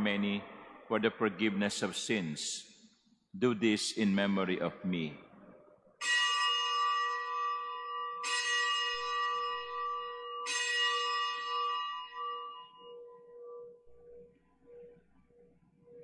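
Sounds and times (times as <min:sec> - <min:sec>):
bell strokes ringing: 0:06.0 - 0:16.0.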